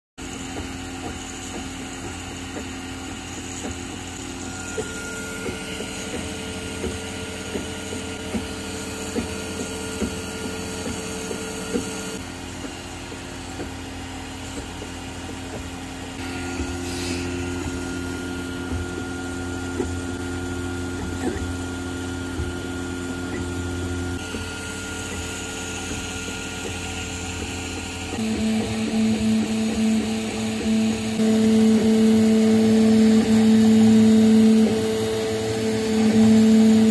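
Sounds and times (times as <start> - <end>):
stepper motors whining: 0.2 - 36.9.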